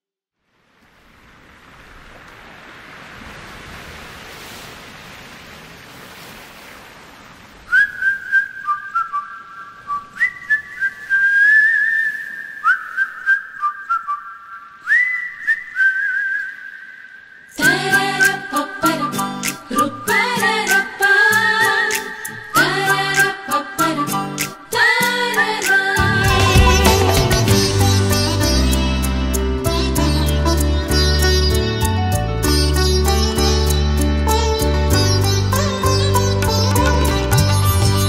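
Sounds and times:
whistled melody: 0:07.7 - 0:20.1, 0:22.4 - 0:23.0
full band playing: 0:26.0 - 0:29.6.

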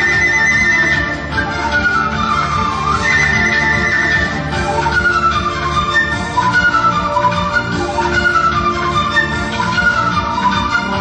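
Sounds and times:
bamboo flute melody: 0:00.0 - 0:11.0
low instrumental accompaniment: 0:00.0 - 0:11.0.

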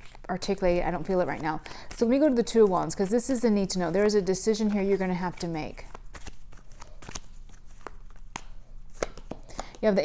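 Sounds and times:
cards clicking and sliding on cloth: 0:05.9 - 0:09.8.

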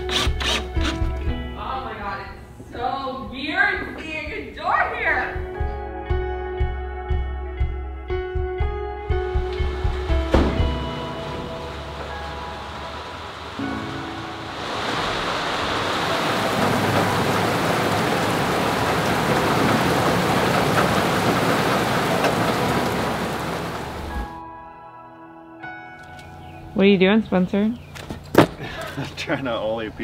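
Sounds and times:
music: 0:00.0 - 0:17.6, 0:24.1 - 0:30.0
steady rain falling: 0:09.4 - 0:24.3.

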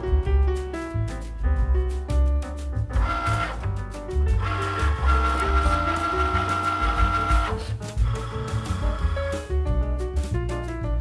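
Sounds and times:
background music: 0:00.0 - 0:11.0
cutting machine motor whirring: 0:03.0 - 0:03.6, 0:04.4 - 0:09.1.

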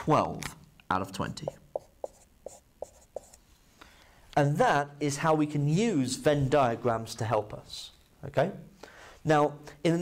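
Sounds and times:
marker squeaking on whiteboard: 0:01.5 - 0:03.4
faint marker rubbing: 0:01.5 - 0:03.6.

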